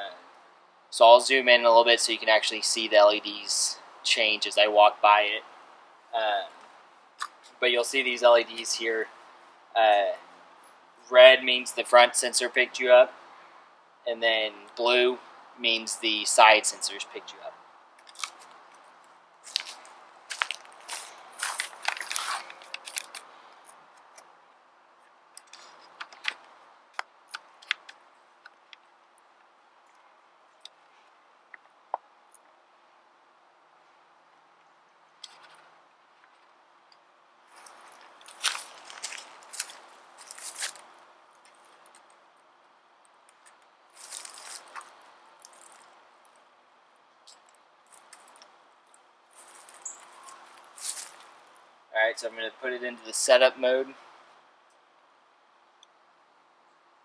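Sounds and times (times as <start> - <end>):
crunches and rustles: 18.0 - 24.4, 37.5 - 42.2, 43.2 - 46.5, 47.3 - 51.6.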